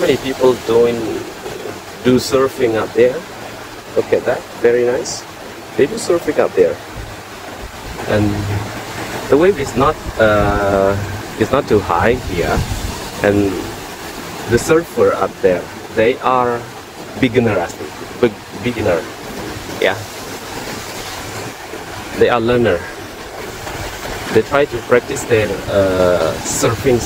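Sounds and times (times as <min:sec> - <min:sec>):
distant surf: 0:00.0 - 0:27.0
wind: 0:00.0 - 0:27.0
man speaking: 0:05.8 - 0:06.8, 0:08.0 - 0:12.6, 0:13.2 - 0:13.7, 0:14.5 - 0:19.1, 0:24.4 - 0:27.0
man saying yeah: 0:08.1 - 0:08.6.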